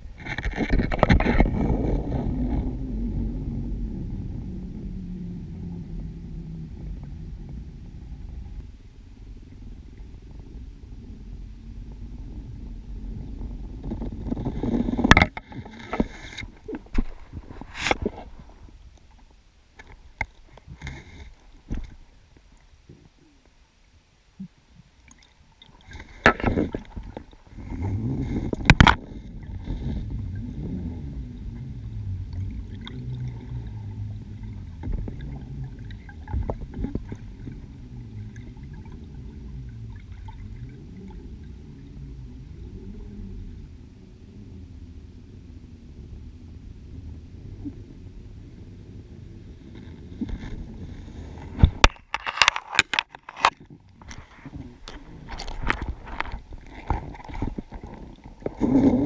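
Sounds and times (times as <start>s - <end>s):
underwater rumble and gurgle: 0.0s - 59.0s
sharp clicks and knocks: 51.6s - 54.2s.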